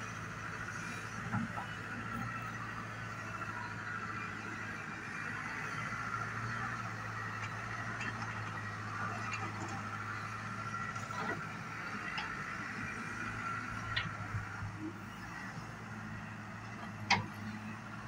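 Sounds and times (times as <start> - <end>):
excavator diesel engine running: 0.0 - 18.0.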